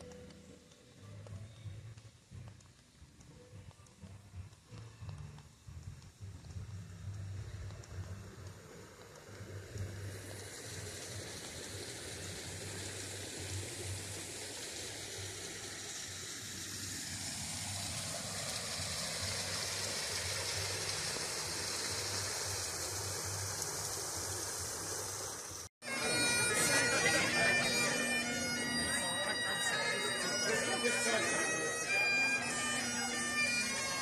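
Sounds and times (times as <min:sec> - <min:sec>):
water rushing and splashing: 0:08.8 - 0:25.7.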